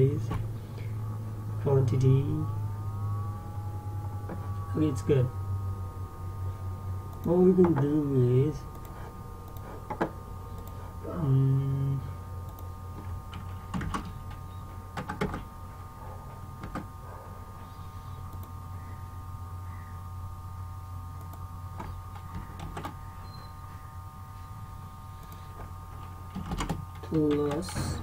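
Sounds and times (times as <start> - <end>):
electrical hum: 0.0 - 28.0
faint high whine: 0.0 - 28.0.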